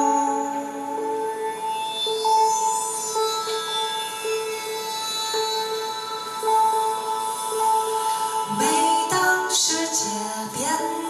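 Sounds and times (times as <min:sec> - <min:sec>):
electronic keyboard: 0:00.0 - 0:11.0.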